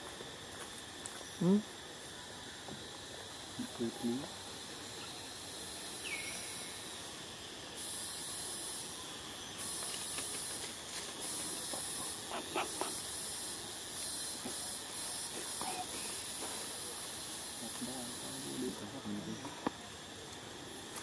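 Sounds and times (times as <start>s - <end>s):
high-pitched forest hiss: 0.0s - 21.0s.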